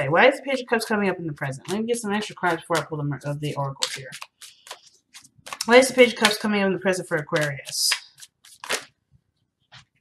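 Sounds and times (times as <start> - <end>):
cards clicking and swishing: 2.4 - 6.4, 7.1 - 8.9.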